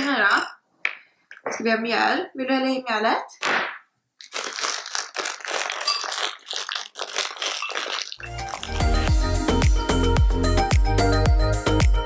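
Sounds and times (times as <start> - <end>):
plastic packet crinkling: 4.2 - 9.0
music with heavy bass: 8.3 - 12.0.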